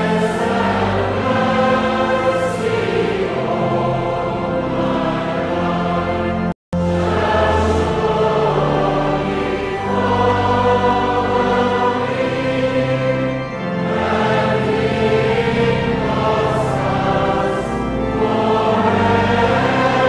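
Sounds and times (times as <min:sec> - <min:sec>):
group singing a hymn: 0:00.0 - 0:20.0.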